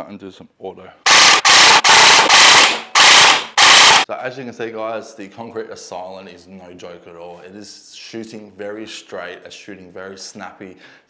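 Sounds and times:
gel blaster firing full auto: 0:01.1 - 0:04.1.

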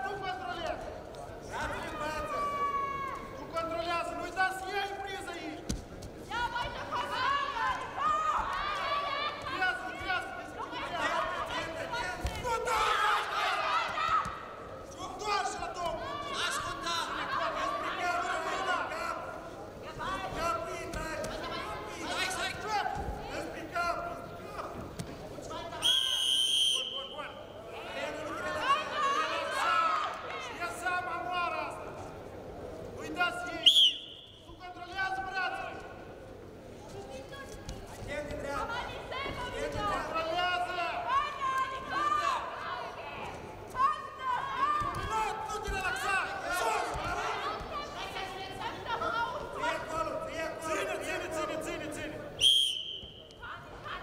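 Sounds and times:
referee's whistle blast: 0:25.8 - 0:27.2, 0:52.4 - 0:53.3.

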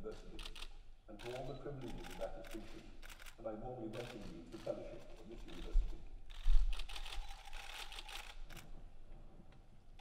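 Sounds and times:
camera shutters clicking: 0:06.3 - 0:08.7.

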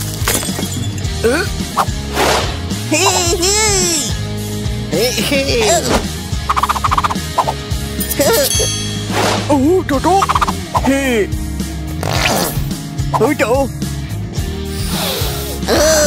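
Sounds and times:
background music: 0:00.0 - 0:16.0
high-pitched gibberish voices: 0:02.9 - 0:04.1, 0:04.9 - 0:07.6, 0:10.2 - 0:10.9.

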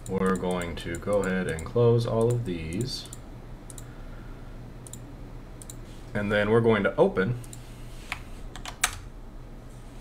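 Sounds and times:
computer keyboard keystrokes: 0:08.5 - 0:09.0.

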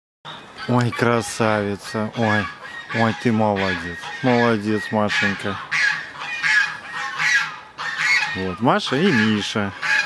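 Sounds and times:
hoarse honking animal calls: 0:00.6 - 0:10.0.

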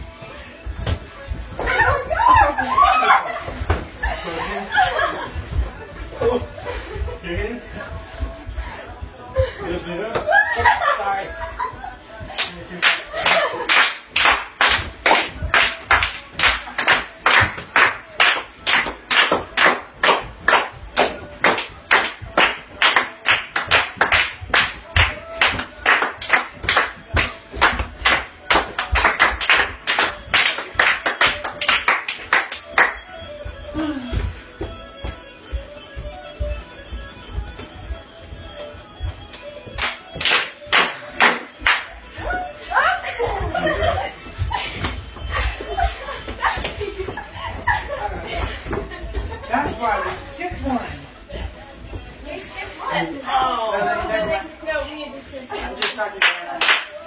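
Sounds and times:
music: 0:00.0 - 0:57.0
hand clapping in steady time: 0:12.3 - 0:42.3, 0:55.8 - 0:57.0.

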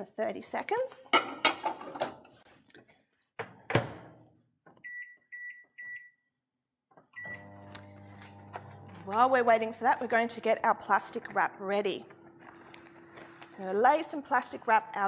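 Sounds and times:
microwave humming: 0:07.2 - 0:13.6.

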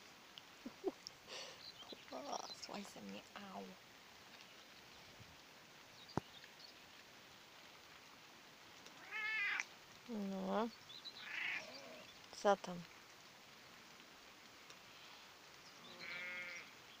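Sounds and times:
cat meowing: 0:09.0 - 0:09.6, 0:11.2 - 0:12.0.

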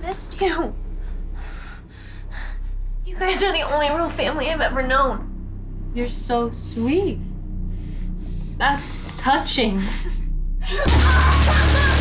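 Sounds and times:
woman breathing hard: 0:00.8 - 0:03.0.

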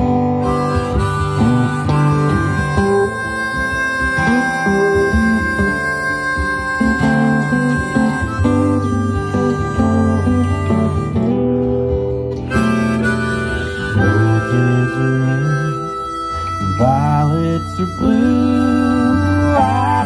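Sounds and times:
acoustic guitar: 0:00.0 - 0:20.0
harmonica solo: 0:00.0 - 0:20.0.

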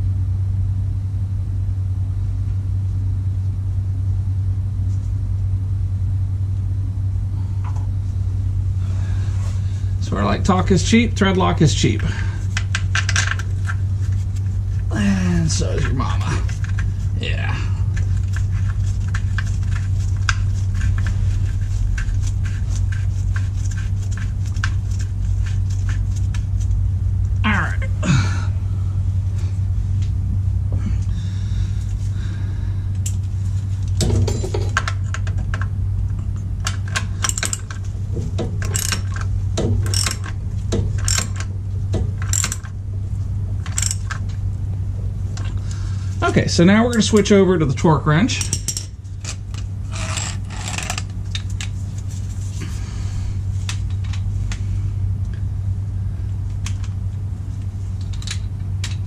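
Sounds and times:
low hum: 0:00.0 - 0:59.0.

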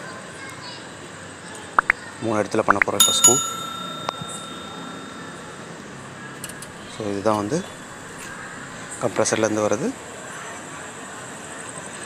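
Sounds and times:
metal struck ringing like bell: 0:03.0 - 0:06.0.

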